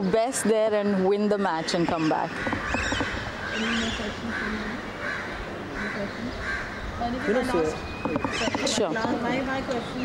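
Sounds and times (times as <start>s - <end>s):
bird calling: 0.0s - 10.0s.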